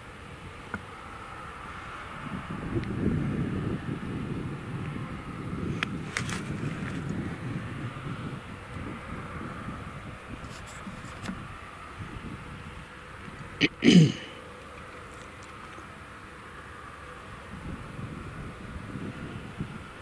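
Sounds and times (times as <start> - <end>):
tractor engine drone: 0.0 - 20.0.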